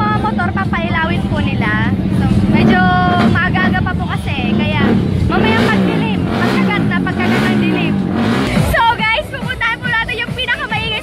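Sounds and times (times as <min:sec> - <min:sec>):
woman talking: 0:00.0 - 0:08.0, 0:08.6 - 0:11.0
low mechanical drone: 0:00.0 - 0:09.5.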